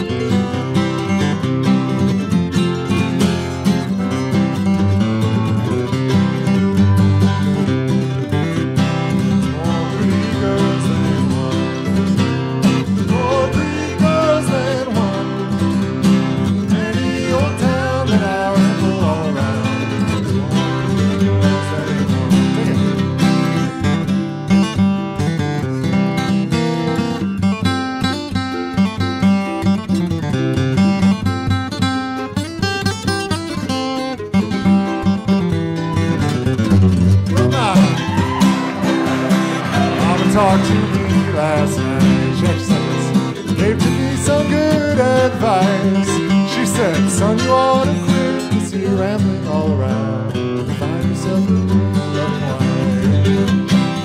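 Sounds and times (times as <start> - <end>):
acoustic guitar: 0.0 - 54.0
mandolin: 0.0 - 54.0.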